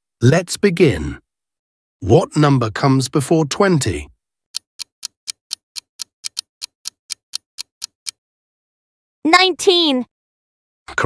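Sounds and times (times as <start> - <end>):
clock ticking: 4.5 - 8.2.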